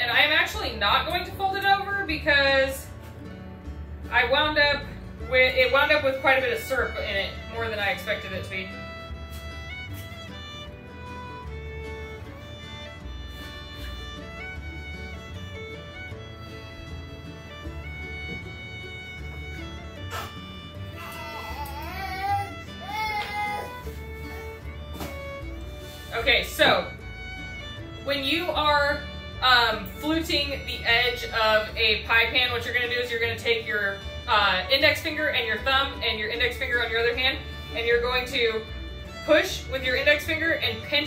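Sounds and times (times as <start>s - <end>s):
fiddle-led instrumental music: 0.0s - 41.0s.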